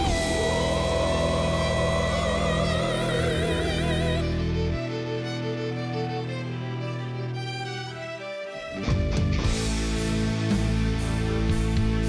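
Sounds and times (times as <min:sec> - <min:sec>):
keyboard and band backing: 0:00.0 - 0:04.3, 0:07.2 - 0:12.0.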